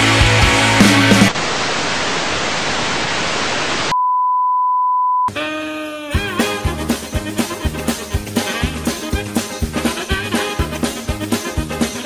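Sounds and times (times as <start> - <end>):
steady pure test tone beep: 3.9 - 5.3.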